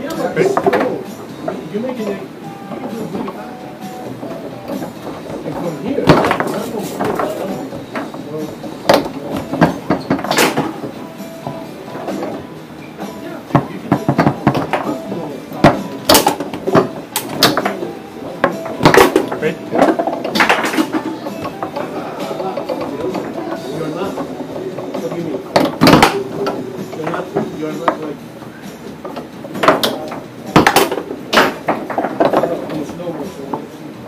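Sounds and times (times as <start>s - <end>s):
background chatter: 0.0s - 34.0s
rods clacking: 0.0s - 34.0s
foosball ball cracks: 0.4s - 1.7s, 4.0s - 12.4s, 13.5s - 33.7s.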